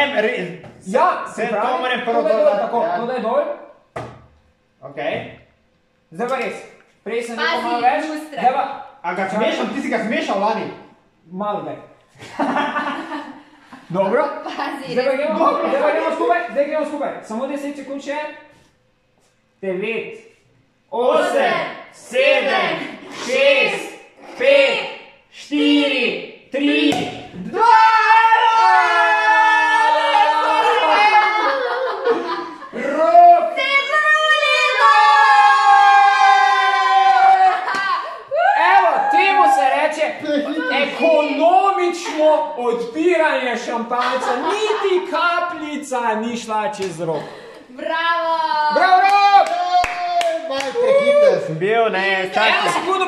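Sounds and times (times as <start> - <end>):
people cheering and shouting: 26.8 - 41.0, 48.2 - 51.6
hand claps: 37.6 - 38.0, 49.1 - 50.8.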